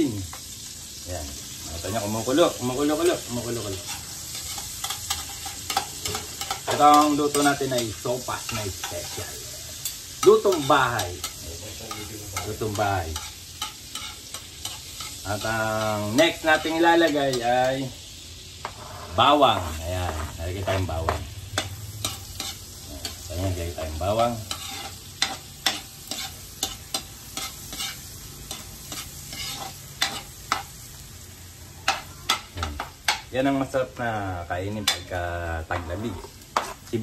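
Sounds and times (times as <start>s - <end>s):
margarine sizzling: 0.0s - 37.0s
metal spatula scraping a wok: 2.3s - 17.8s, 18.4s - 30.8s, 35.8s - 37.0s.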